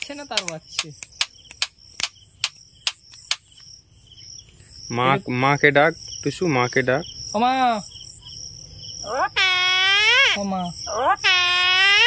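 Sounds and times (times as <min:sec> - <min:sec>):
sharp clicks: 0:00.0 - 0:03.7
insects chirping: 0:00.0 - 0:12.0.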